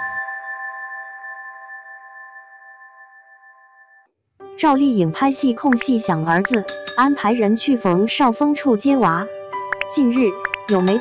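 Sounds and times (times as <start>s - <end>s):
jingle chord held: 6.7s - 8.1s, 10.7s - 11.0s.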